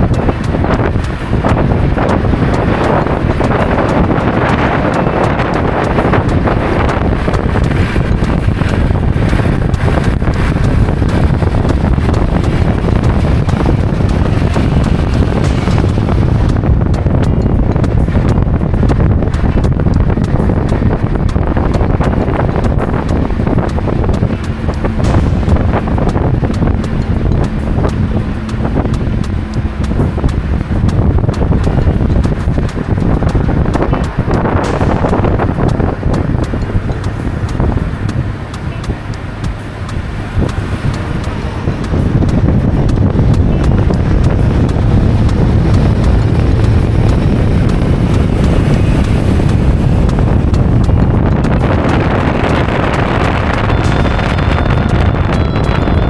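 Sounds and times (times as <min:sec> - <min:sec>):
car road noise: 0:00.0 - 0:56.0
wind buffeting microphone: 0:00.0 - 0:56.0.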